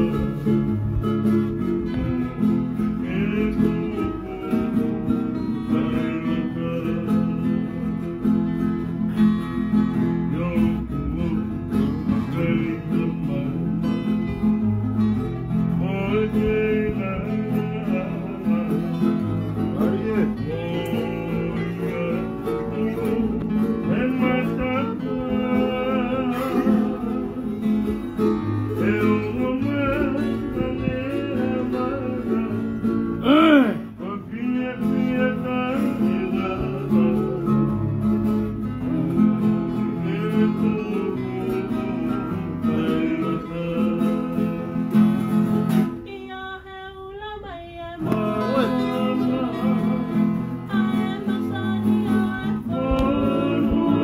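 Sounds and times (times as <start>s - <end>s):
acoustic guitar strumming: 0.0s - 54.0s
person singing: 15.8s - 27.7s, 28.7s - 38.0s, 46.0s - 54.0s.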